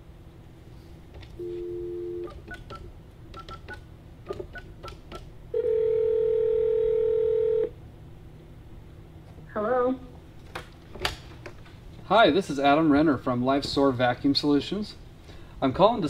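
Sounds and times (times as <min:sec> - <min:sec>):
telephone ringing tone: 0:01.4 - 0:02.4, 0:05.5 - 0:07.7
telephone dial tone: 0:01.4 - 0:02.7, 0:05.6 - 0:07.7
keypad beeps: 0:01.4 - 0:05.0.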